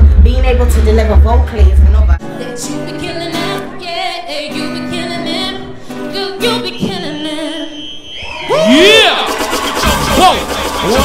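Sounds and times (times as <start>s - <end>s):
woman singing: 0.0s - 7.9s
acoustic guitar: 0.0s - 8.2s.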